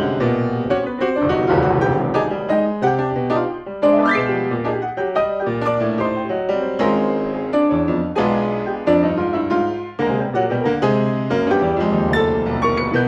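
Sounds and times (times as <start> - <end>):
grand piano playing chords: 0.0 - 13.0.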